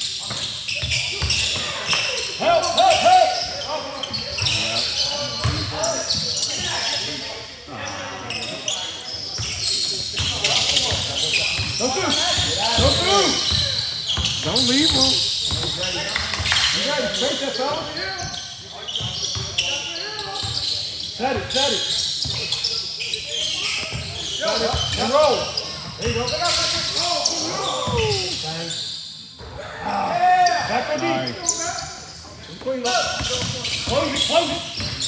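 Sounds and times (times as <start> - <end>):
sneakers squeaking: 0.0 - 35.0
players calling out: 0.7 - 35.0.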